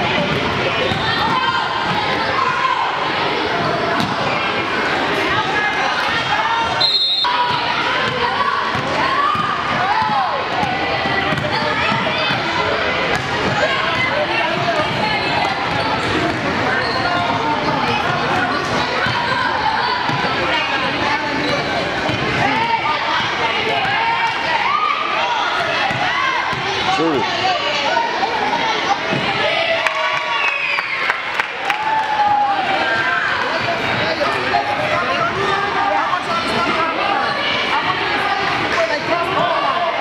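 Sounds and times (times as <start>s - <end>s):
chatter and calls of people: 0.0s - 40.0s
basketball bouncing: 4.0s - 4.2s, 7.5s - 12.4s, 25.8s - 26.7s.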